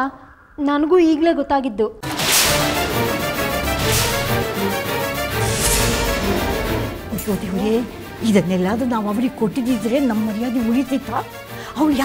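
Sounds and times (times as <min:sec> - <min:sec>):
dramatic whoosh: 0:02.0 - 0:09.4
background score music: 0:02.0 - 0:12.0.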